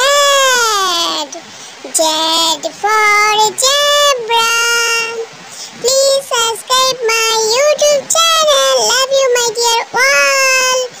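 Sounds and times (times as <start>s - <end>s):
high child-like voice chanting: 0.0s - 11.0s.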